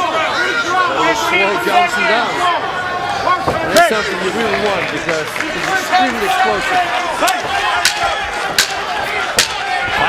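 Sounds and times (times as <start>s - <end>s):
people shouting: 0.0s - 4.9s, 5.5s - 10.0s
crowd noise: 0.0s - 10.0s.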